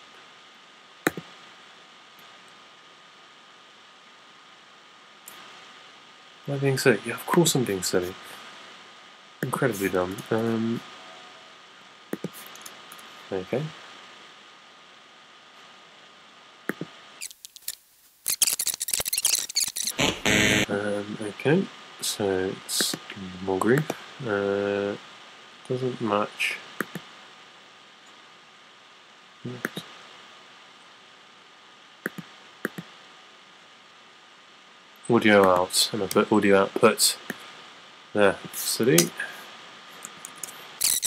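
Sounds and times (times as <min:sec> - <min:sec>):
faint steady hiss: 0:00.0 - 0:41.0
computer mouse clicks: 0:01.1 - 0:01.3, 0:12.1 - 0:13.0, 0:26.8 - 0:27.1, 0:32.0 - 0:32.9.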